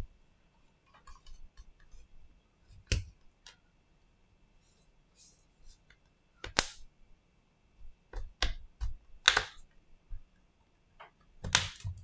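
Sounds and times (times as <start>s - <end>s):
plastic clips snapping: 9.2s - 9.6s.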